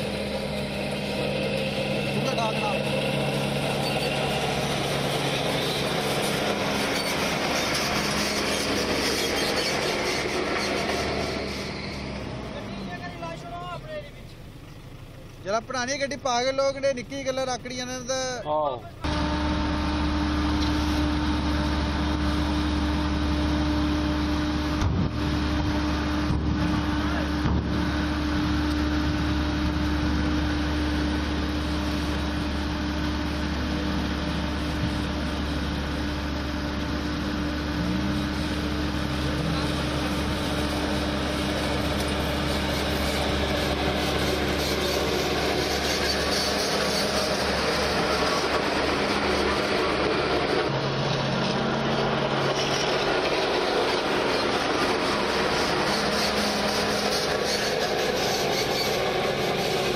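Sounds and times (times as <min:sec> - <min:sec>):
road roller engine drone: 0:00.0 - 0:59.9.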